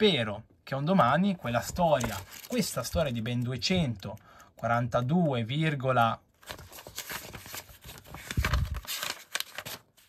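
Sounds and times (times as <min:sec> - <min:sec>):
pages flipping: 0:01.4 - 0:04.1, 0:06.4 - 0:10.0.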